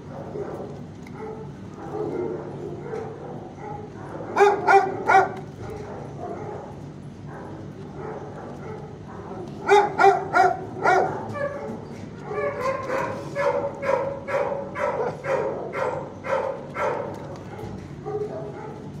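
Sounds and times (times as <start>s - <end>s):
dogs barking sharply: 0.0s - 19.0s
fainter barking and yelping: 2.8s - 6.6s, 9.6s - 17.0s.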